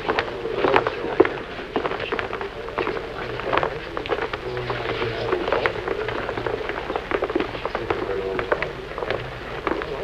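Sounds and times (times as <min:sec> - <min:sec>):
footsteps on hard floor: 0:00.0 - 0:10.0
steady low hum: 0:00.0 - 0:10.0.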